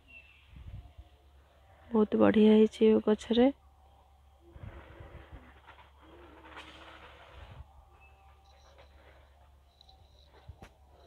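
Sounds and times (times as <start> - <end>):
dove cooing: 4.5 - 7.5.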